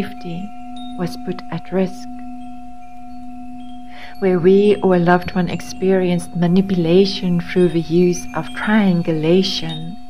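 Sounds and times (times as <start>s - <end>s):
singing bowl drone: 0.0s - 10.0s.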